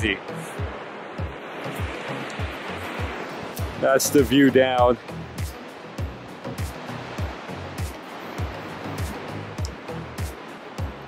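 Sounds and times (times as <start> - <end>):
distant river rushing: 0.0 - 11.0
music with low beat: 4.9 - 11.0.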